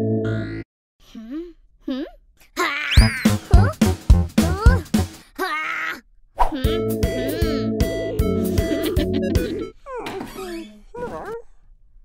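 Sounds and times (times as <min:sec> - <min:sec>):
cartoon boy's wordless cry: 0:04.5 - 0:06.0
music with plucked guitar: 0:06.7 - 0:09.7.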